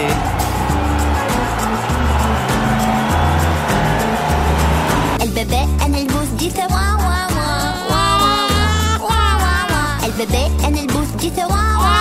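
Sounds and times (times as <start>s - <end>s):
instrumental music with bass beat: 0.0s - 12.0s
car engine and tyres rushing: 3.6s - 5.2s.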